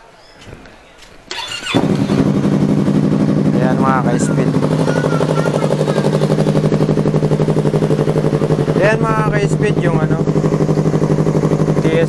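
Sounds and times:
motorcycle engine idling: 1.3 - 12.0.

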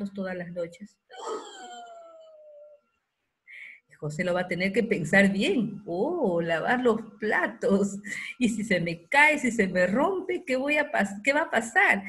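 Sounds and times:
person exclaiming oooh: 1.1 - 2.8.

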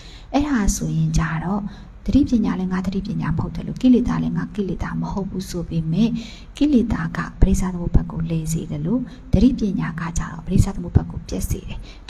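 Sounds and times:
woman speaking into a microphone: 0.4 - 12.0.

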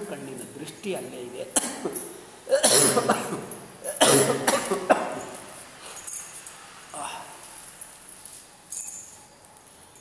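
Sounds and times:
person coughing: 1.6 - 5.2.

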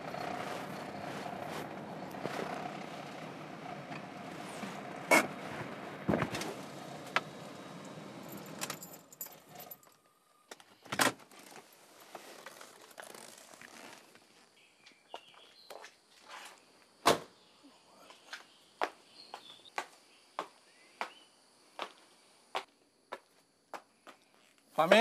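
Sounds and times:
car rolling on gravel: 0.0 - 9.8.

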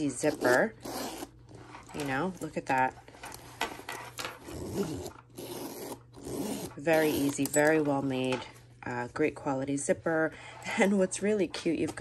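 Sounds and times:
metal zipper sliding open: 0.1 - 2.2, 3.2 - 7.7.

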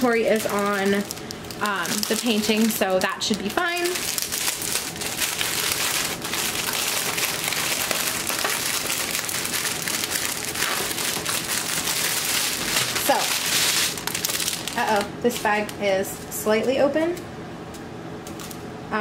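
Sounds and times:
plastic packaging crinkling: 0.0 - 18.7.

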